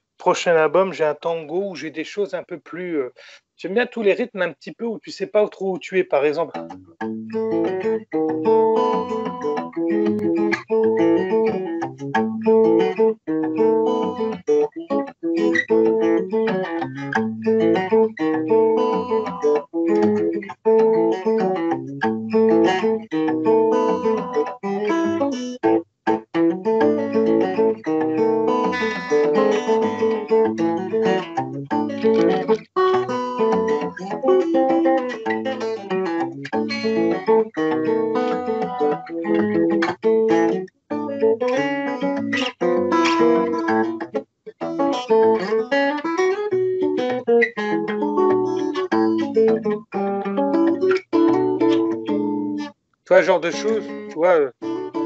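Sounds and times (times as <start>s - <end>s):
fingerstyle acoustic guitar: 6.4s - 55.0s.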